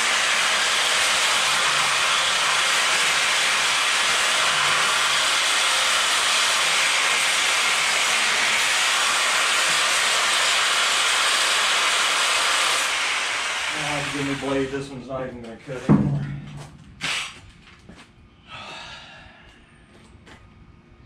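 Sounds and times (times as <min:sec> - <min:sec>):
plasma cutter hissing: 0:17.0 - 0:17.4.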